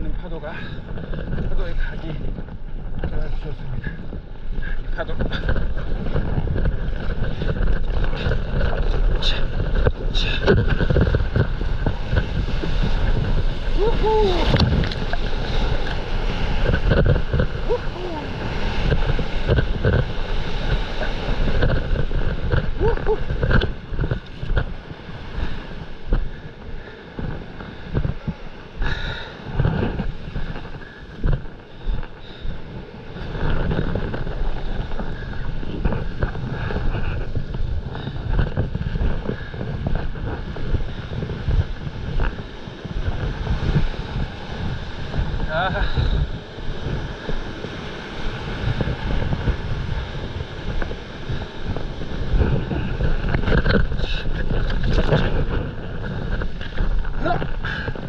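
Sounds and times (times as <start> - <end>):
wind rushing over microphone: 0.0 - 58.0
water churning and splashing: 3.4 - 58.0.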